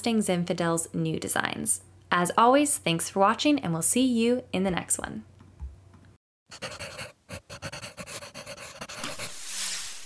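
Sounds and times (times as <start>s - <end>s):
rhythmic breathy panting: 6.6s - 9.2s
rising hiss: 9.0s - 10.0s.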